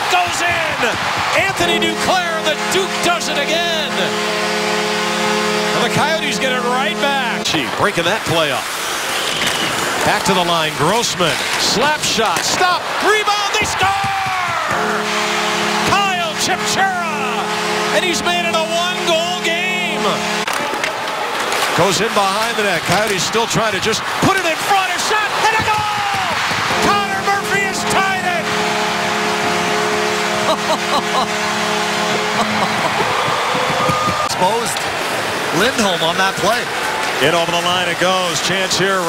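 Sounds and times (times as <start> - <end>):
goal horn blowing: 0.0 - 7.8, 13.0 - 20.8, 21.6 - 34.8
crowd cheering: 0.0 - 39.0.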